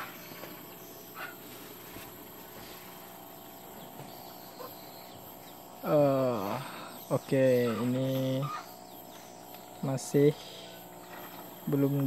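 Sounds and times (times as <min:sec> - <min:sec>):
faint animal calls: 0:00.0 - 0:01.8, 0:03.8 - 0:09.5.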